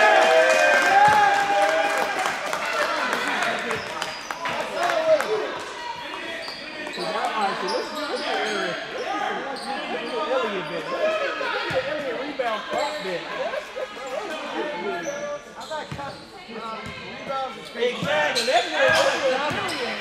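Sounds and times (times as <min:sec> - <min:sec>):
voices talking and calling out: 0:02.7 - 0:20.0.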